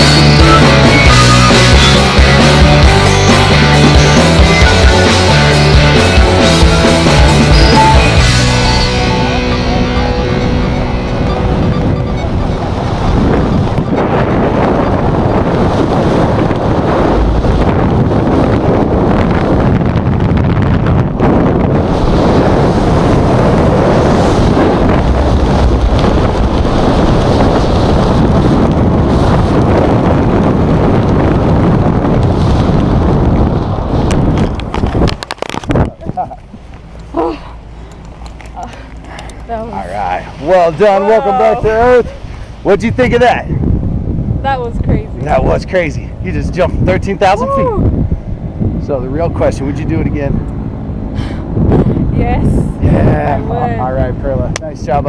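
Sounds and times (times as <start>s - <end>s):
wind buffeting microphone: 0.0s - 55.0s.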